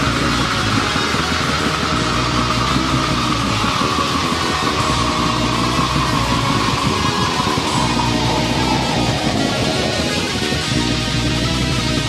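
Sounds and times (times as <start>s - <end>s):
distorted electric guitar: 0.0s - 12.0s
high held tone: 0.0s - 12.0s.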